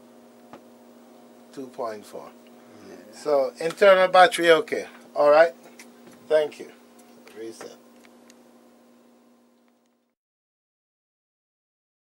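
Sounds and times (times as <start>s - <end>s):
faint electrical hum: 0.0s - 10.2s.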